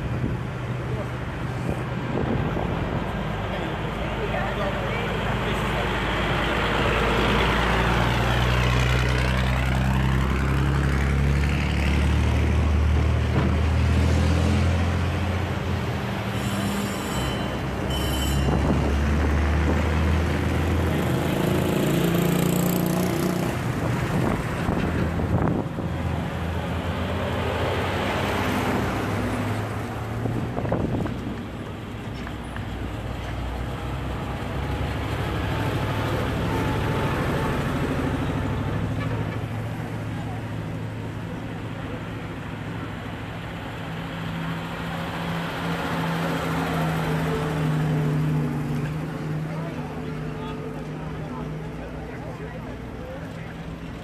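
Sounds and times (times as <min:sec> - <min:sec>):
truck engines droning: 0:00.0 - 0:54.0
brief high-pitched tone: 0:16.4 - 0:18.6.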